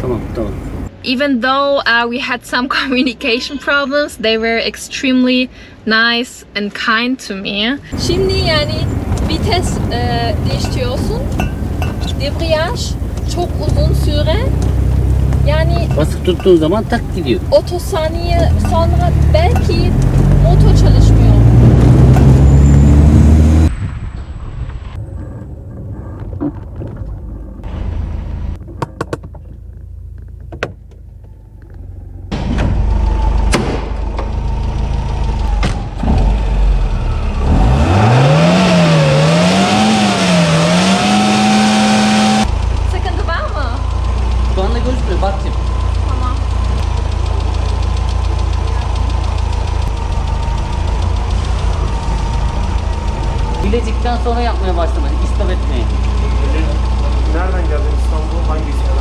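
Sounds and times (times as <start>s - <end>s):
car engine idling: 0.0s - 0.9s, 7.8s - 23.7s, 25.0s - 59.0s
car engine driving: 0.0s - 1.6s, 7.8s - 59.0s
car engine revving: 7.9s - 59.0s.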